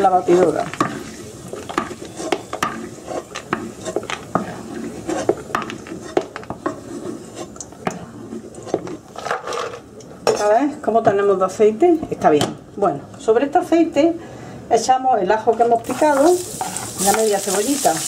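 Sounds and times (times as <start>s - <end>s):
metal spoon scraping frying pan: 0.0s - 7.6s, 15.8s - 17.8s
oil sizzling: 15.8s - 18.0s.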